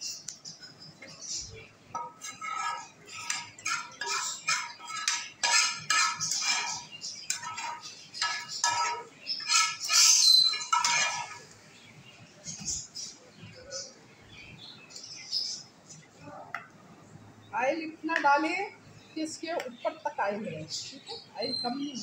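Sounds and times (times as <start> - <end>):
metal spoon scraping frying pan: 1.9 - 11.6.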